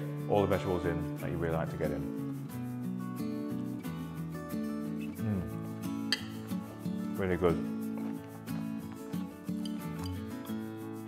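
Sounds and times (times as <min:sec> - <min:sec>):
background music held notes: 0:00.0 - 0:11.0.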